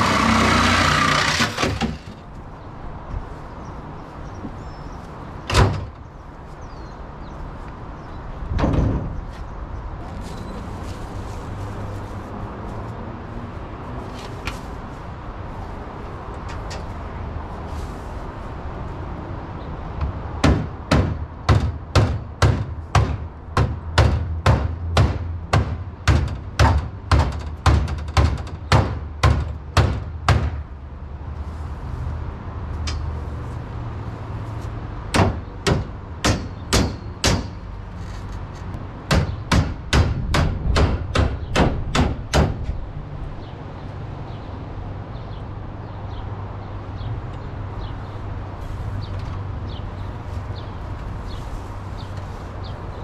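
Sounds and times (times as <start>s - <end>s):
hammer on sheet metal: 20.4s - 30.6s, 35.1s - 37.6s, 39.1s - 42.6s.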